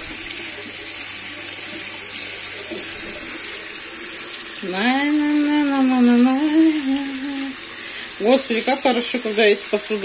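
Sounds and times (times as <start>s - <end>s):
tap water running into bowl: 0.0s - 10.0s
woman humming: 4.9s - 7.6s.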